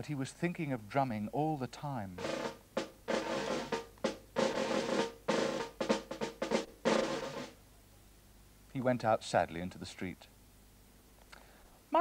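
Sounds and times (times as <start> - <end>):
snare drum rolls and beats: 2.2 - 7.6.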